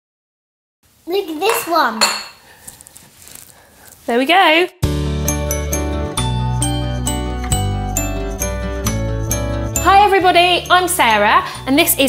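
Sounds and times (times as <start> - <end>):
cutlery and plates clinking: 1.4 - 2.4.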